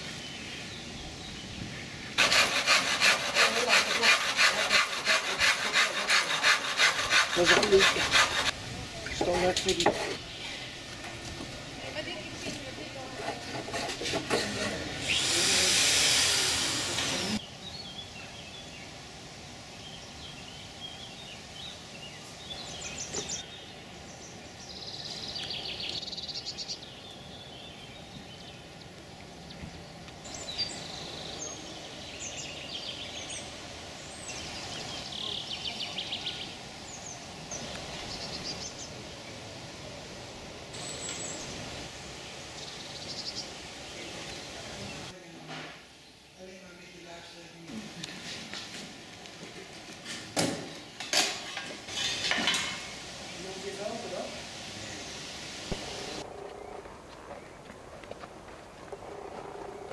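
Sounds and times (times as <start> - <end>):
birds chirping and trilling: 0.0 - 40.1, 40.7 - 45.2
loud burst of noise: 14.9 - 17.4.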